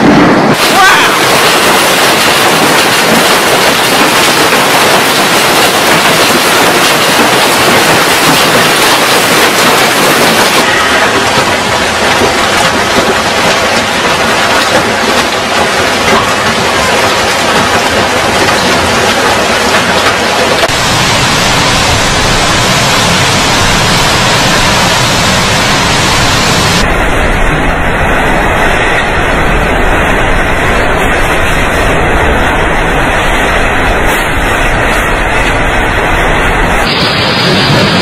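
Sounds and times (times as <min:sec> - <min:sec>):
strong wind: 0:00.0 - 0:38.0
hail and heavy rain pelting: 0:00.5 - 0:26.9.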